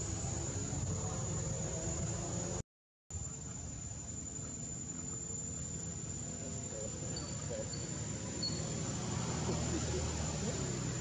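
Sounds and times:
insect trilling: 0:03.2 - 0:11.0.

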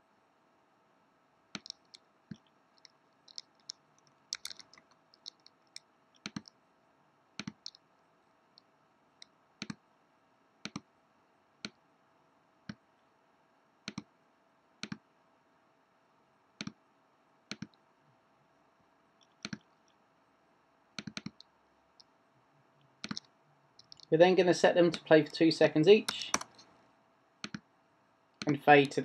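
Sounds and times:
computer mouse clicks: 0:01.5 - 0:06.6, 0:07.4 - 0:07.9, 0:08.5 - 0:09.8, 0:10.6 - 0:10.9, 0:13.8 - 0:14.1, 0:14.8 - 0:15.0, 0:16.6 - 0:16.8, 0:17.5 - 0:17.8, 0:19.2 - 0:20.0, 0:21.0 - 0:22.1, 0:23.0 - 0:24.1, 0:26.1 - 0:26.8, 0:27.4 - 0:27.7.

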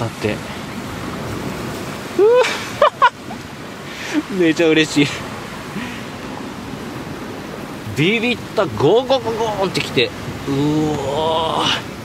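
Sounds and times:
sea waves on rocky shore: 0:00.0 - 0:12.0.

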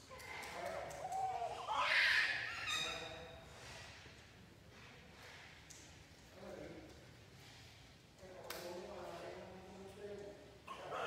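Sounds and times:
newborn baby crying: 0:01.0 - 0:02.7.

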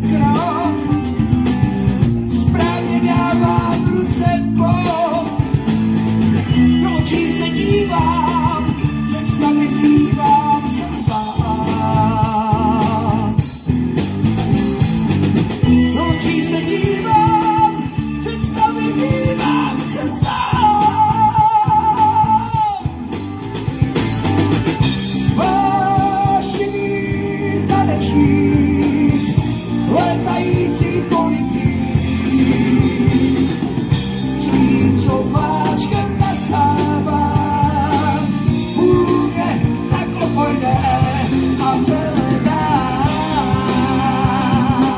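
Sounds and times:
man singing: 0:00.0 - 0:01.6, 0:02.2 - 0:13.7, 0:15.6 - 0:23.2, 0:24.8 - 0:44.9
rock band playing live: 0:00.0 - 0:44.9.

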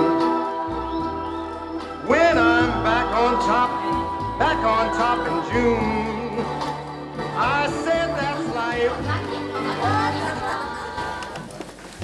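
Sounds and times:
acoustic guitars: 0:00.0 - 0:11.2.

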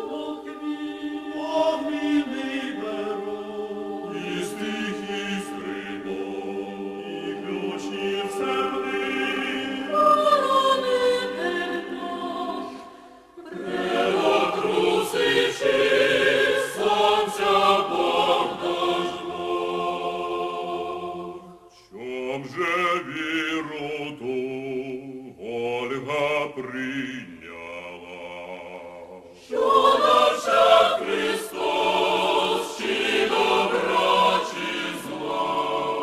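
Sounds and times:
choir singing a cappella: 0:00.0 - 0:36.0.

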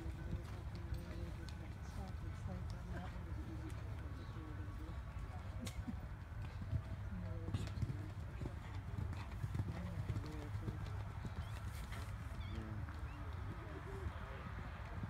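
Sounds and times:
faint voices: 0:00.0 - 0:15.0
horse hoofbeats on grass: 0:06.1 - 0:15.0.

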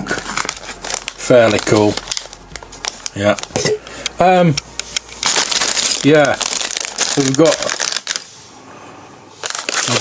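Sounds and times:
plastic bag crinkling: 0:00.0 - 0:08.4, 0:09.4 - 0:10.0.

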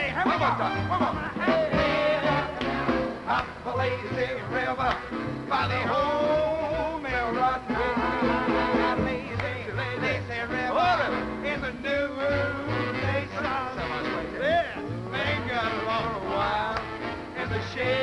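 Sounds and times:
swing band music: 0:00.0 - 0:18.0.

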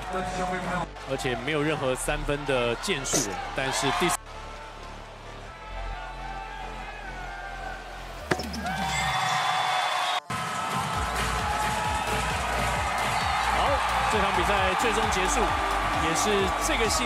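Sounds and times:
crowd noise: 0:00.0 - 0:09.2, 0:10.2 - 0:17.0
music playing: 0:00.0 - 0:17.0.

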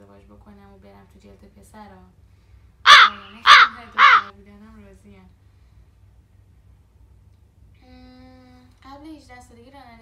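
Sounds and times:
animal calls rising and falling: 0:02.9 - 0:04.3.

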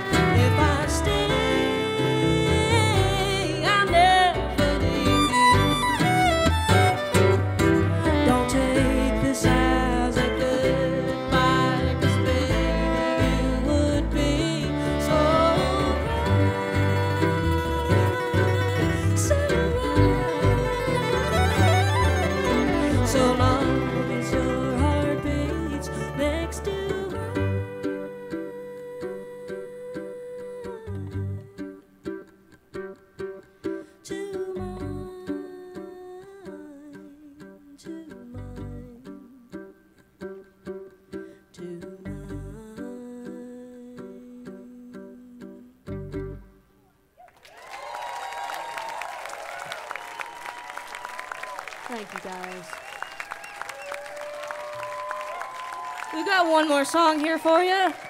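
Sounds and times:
string band playing: 0:00.0 - 0:36.0, 0:37.4 - 0:46.7, 0:48.2 - 0:58.0
deep bass notes: 0:00.1 - 0:27.8
audience applauding and cheering: 0:16.0 - 0:25.2, 0:47.2 - 0:58.0.

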